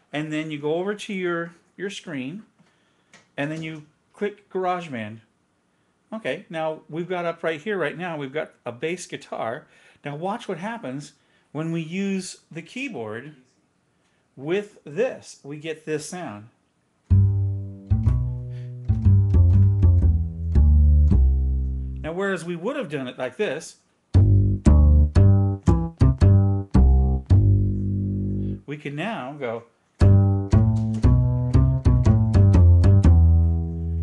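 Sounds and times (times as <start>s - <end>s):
deep plucked bass notes: 17.1s - 22.1s, 24.1s - 28.6s, 30.0s - 34.0s.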